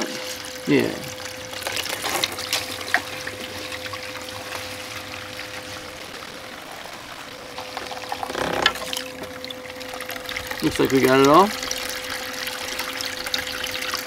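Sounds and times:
steady hum: 0.0s - 14.0s
water pouring and splashing: 0.0s - 14.0s.

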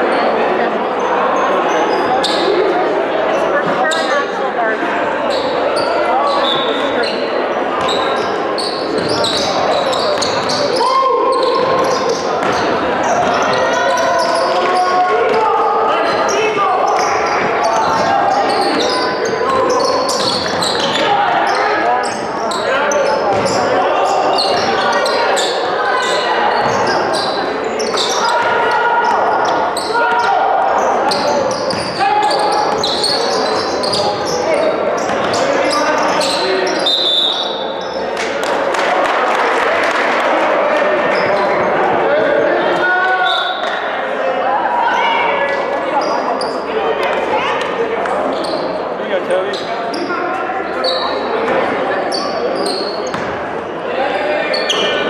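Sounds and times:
many voices talking: 0.0s - 55.0s
basketballs bouncing on hardwood: 23.3s - 23.6s.

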